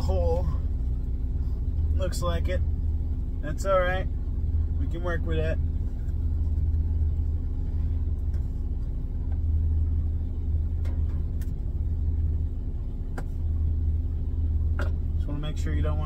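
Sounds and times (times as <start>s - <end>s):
truck engine idling: 0.0s - 16.0s.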